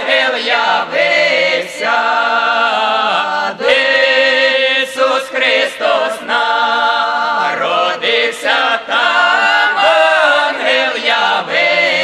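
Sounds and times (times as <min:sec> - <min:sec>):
choir singing unaccompanied in harmony: 0:00.0 - 0:12.0.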